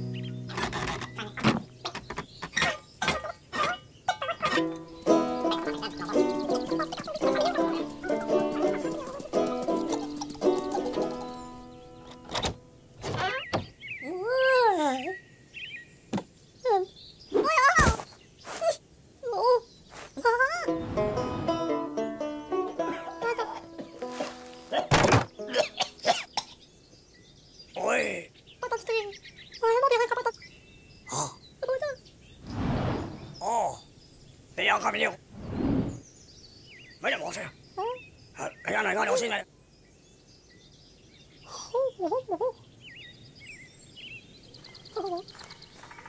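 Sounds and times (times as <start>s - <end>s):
birds chirping: 0.0s - 46.0s
short squeak: 0.5s - 2.8s
thud: 24.9s - 25.3s.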